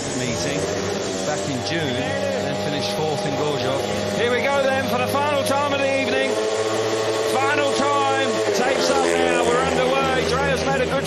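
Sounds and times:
motorbikes revving and accelerating: 0.0 - 11.0.

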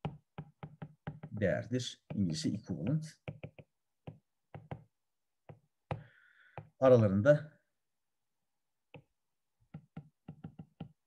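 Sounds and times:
stylus tapping on glass screen: 0.0 - 6.8, 9.7 - 11.0.

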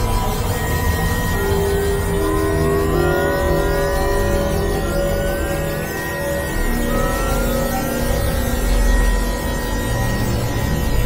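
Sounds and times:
synthesizer drone music: 0.0 - 11.0.

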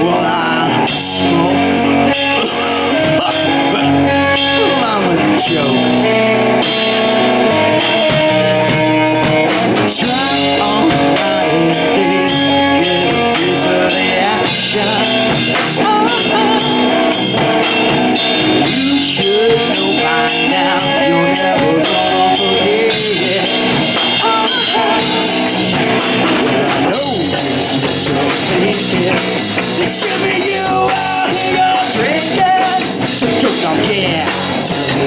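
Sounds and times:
drum kit with cymbals: 0.0 - 35.0
electric guitars: 0.0 - 35.0.

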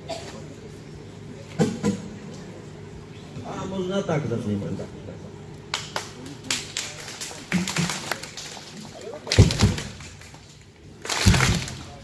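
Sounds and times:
people clapping: 5.7 - 12.0.

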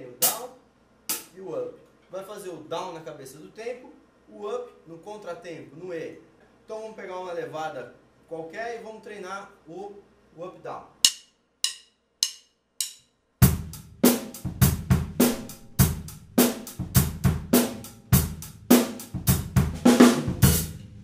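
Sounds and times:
drum kit groove: 0.0 - 0.5, 1.1 - 1.4, 11.0 - 21.0
drumsticks clicking: 11.0 - 13.1.

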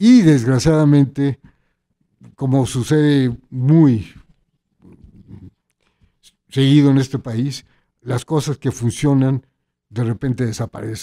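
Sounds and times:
man speaking: 0.0 - 1.4, 2.2 - 4.3, 6.2 - 11.0.

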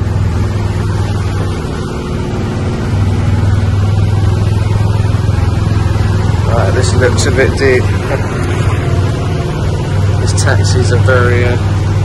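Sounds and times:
golf cart motor humming: 0.0 - 12.0.

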